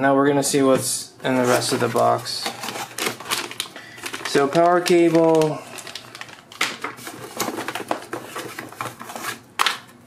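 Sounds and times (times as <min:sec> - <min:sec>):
plastic packaging crinkling: 0:01.3 - 0:09.9.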